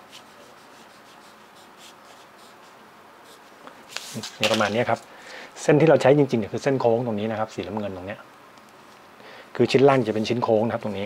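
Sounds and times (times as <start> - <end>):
pen scratching on paper: 0.0 - 3.4.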